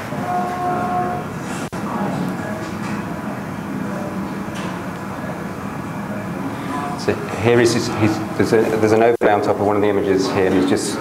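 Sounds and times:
medical equipment humming: 0.0s - 11.0s.

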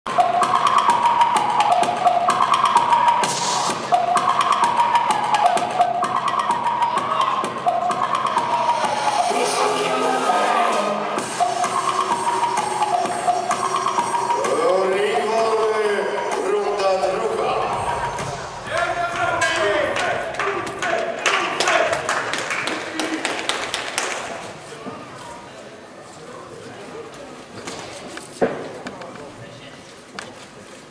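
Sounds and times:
music with fast percussive beat: 0.1s - 9.9s, 11.2s - 22.4s
sharp taps and claps: 18.7s - 24.4s.

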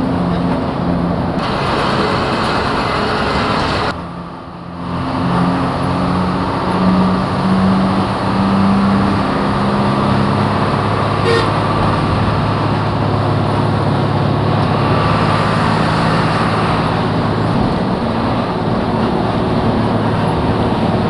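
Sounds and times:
bus engine and road noise: 0.0s - 21.0s.

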